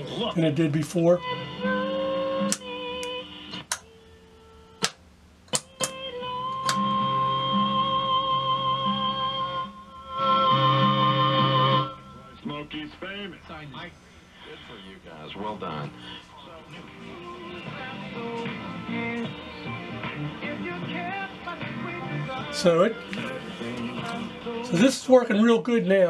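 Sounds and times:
radio static clicks: 2.3 - 3.9, 12.8 - 19.6, 22.4 - 24.3
radio music and tones: 10.1 - 25.0.

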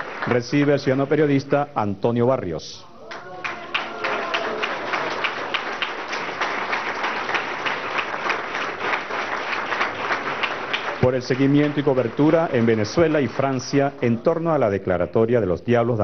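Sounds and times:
audience applauding: 0.0 - 1.6, 3.0 - 14.8.

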